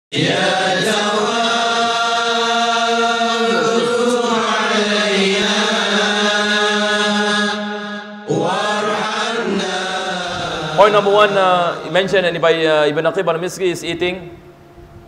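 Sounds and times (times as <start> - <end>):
chanted vocal line: 0.1 - 14.6
low drone: 0.2 - 15.0.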